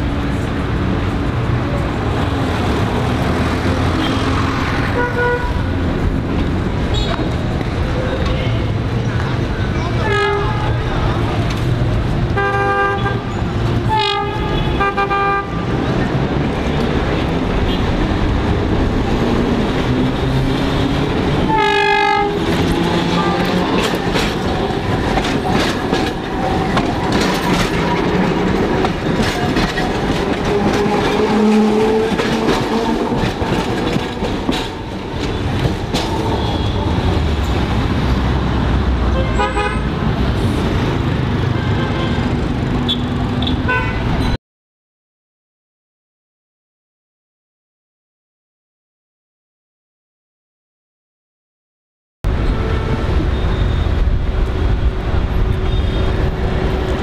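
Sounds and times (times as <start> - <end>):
tram running past: 0.0 - 44.3, 52.3 - 57.0
heavy street traffic: 0.0 - 44.4, 52.2 - 57.0.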